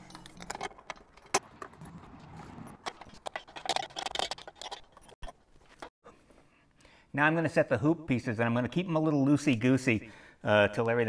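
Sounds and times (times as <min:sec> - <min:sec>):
wrenches clinking on metal: 0:00.0 - 0:01.9, 0:02.8 - 0:05.9.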